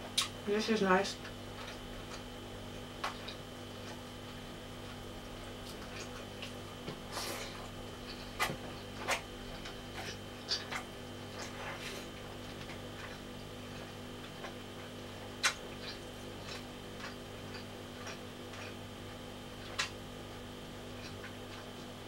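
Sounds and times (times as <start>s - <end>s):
electrical hum: 0.0s - 22.0s
mouth clicks and smacks: 0.2s - 0.4s, 15.3s - 18.8s.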